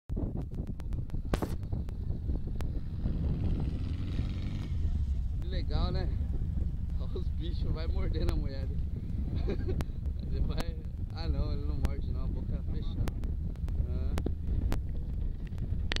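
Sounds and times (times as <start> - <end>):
sharp clicks and crackles: 0.1 - 5.8, 6.6 - 16.0
wind buffeting microphone: 0.1 - 16.0
voices: 5.4 - 14.2
sharp clicks: 13.0 - 14.8.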